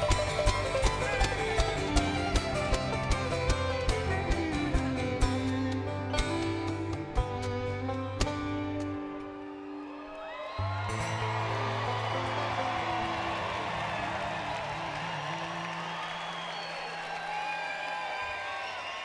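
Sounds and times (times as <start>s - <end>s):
crowd cheering and whooping: 9.3s - 19.0s.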